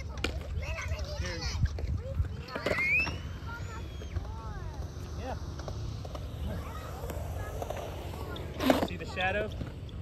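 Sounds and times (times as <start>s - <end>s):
faint voices: 0.0s - 9.9s
skateboard wheels rolling on concrete: 0.0s - 10.0s.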